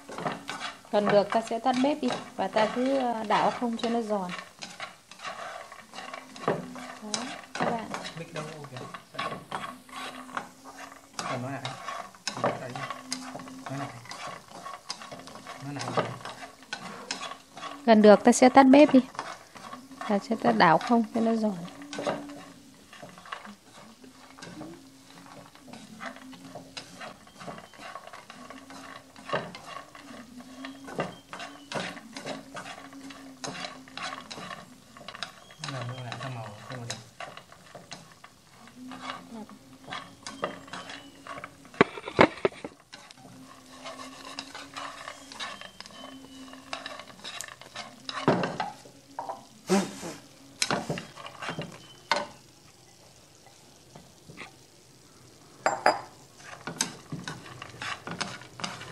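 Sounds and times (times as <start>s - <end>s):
chopsticks stirring peanuts in a pan: 0.0s - 54.8s, 55.6s - 58.9s.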